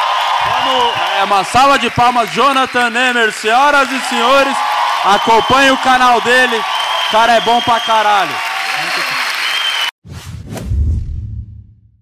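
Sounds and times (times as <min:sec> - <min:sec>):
audience applause: 0:00.0 - 0:09.9
deep boom: 0:10.3 - 0:12.0.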